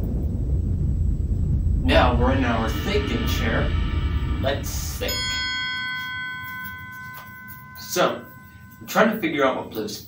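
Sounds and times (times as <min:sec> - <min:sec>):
bright bell-like chime: 0:02.8 - 0:10.0.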